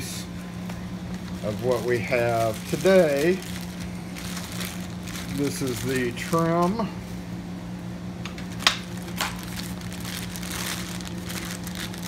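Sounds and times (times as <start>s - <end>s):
plastic bag crinkling: 1.0s - 6.8s, 8.5s - 12.0s.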